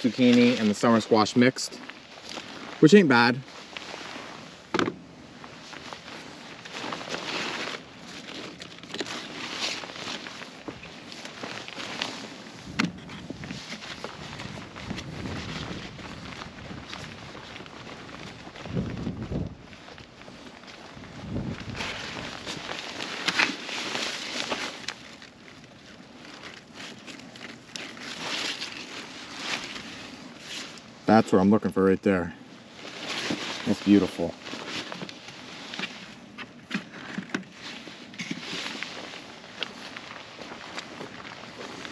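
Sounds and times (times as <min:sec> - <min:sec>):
footsteps through plants: 0:00.0 - 0:31.5, 0:32.6 - 0:41.9
leaves rustling: 0:00.0 - 0:41.9.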